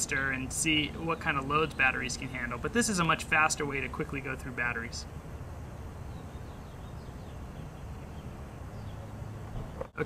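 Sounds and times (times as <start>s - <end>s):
faint bird chirps: 5.9s - 10.0s.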